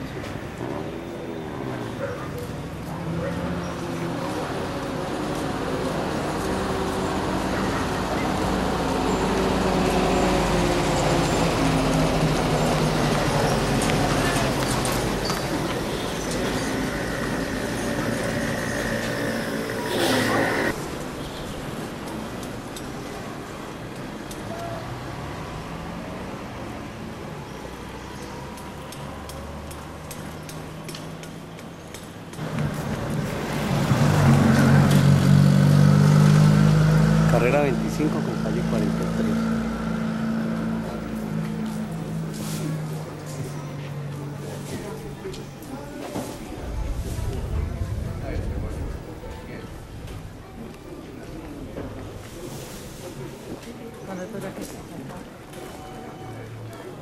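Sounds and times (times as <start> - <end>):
street traffic engines: 0.0 - 57.0.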